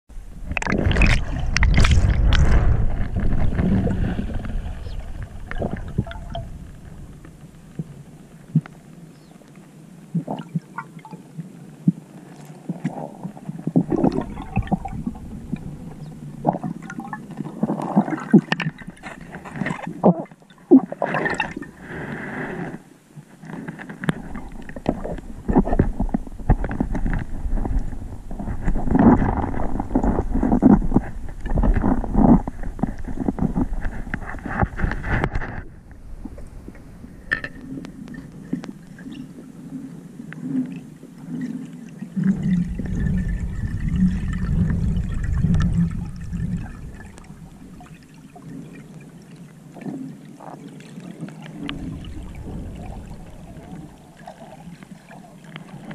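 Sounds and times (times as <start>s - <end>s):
underwater gurgling and rushing: 0.1s - 55.9s.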